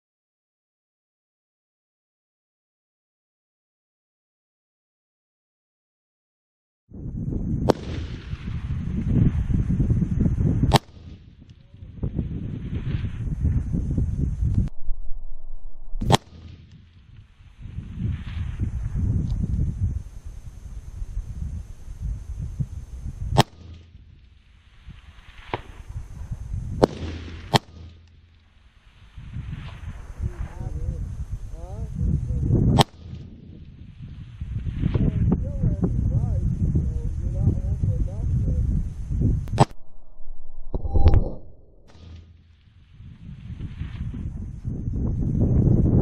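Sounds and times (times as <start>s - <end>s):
low rumble: 6.9s - 46.0s
rifle shot: 7.6s - 8.8s, 10.7s - 11.3s, 15.9s - 16.8s, 23.4s - 24.0s, 26.8s - 28.4s, 32.7s - 33.3s, 39.5s - 42.4s.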